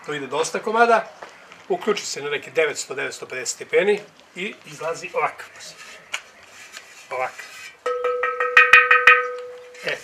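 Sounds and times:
terracotta pot tapped and ringing: 0:07.8 - 0:10.0.

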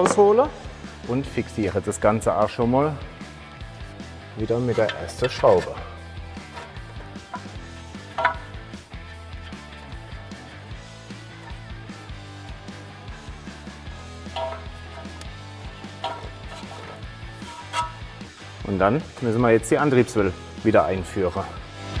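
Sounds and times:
quiet background music: 0:00.0 - 0:22.0.

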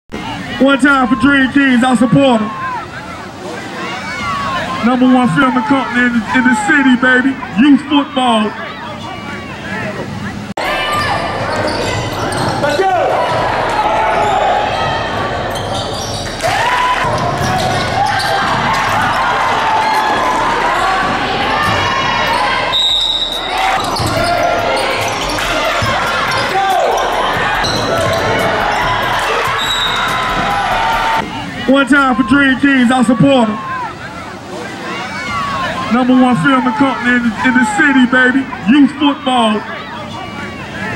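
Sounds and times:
shouts and chatter: 0:00.1 - 0:40.9.

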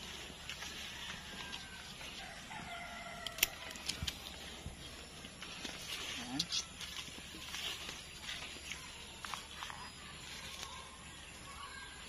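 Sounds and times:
rooster crowing: 0:00.6 - 0:03.8
scissors snipping: 0:03.2 - 0:04.2.

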